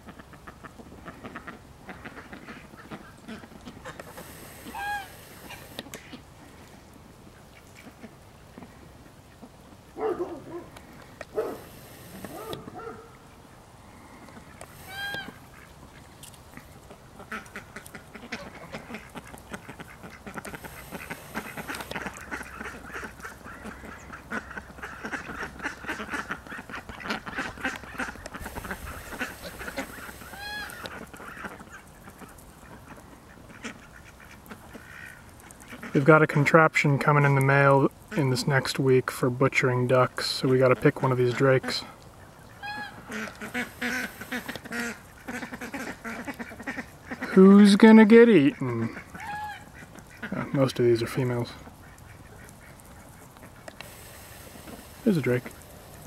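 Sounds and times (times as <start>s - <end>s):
geese honking: 0.0s - 6.3s, 7.3s - 36.1s, 40.6s - 56.0s
ducks quacking and chattering: 0.0s - 39.0s, 39.7s - 56.0s.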